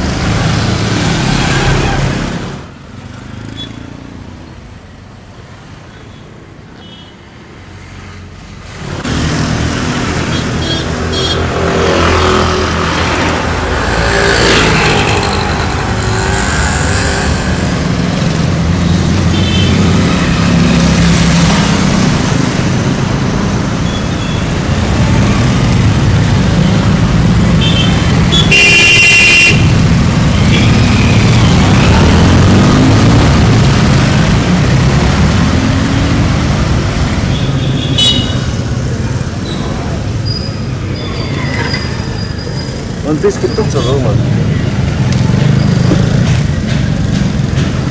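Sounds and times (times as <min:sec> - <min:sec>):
vehicles passing close by: 0:00.0 - 0:06.7, 0:07.3 - 0:47.9
car horns tooting: 0:27.6 - 0:29.8.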